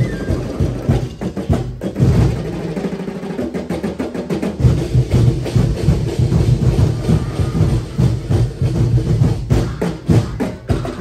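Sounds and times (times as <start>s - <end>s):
drum ensemble playing: 0.0s - 11.0s.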